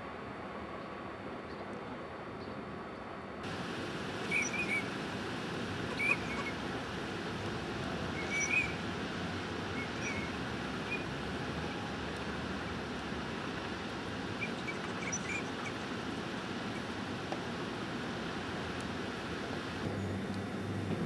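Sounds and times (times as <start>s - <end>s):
outdoor background hiss: 0.0s - 21.0s
duck whistled chirps: 4.3s - 4.9s, 6.0s - 6.6s, 8.2s - 8.8s, 9.8s - 11.1s.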